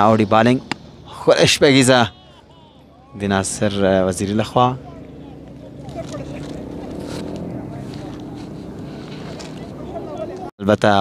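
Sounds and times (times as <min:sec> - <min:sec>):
faint voices in background: 0:04.6 - 0:10.5.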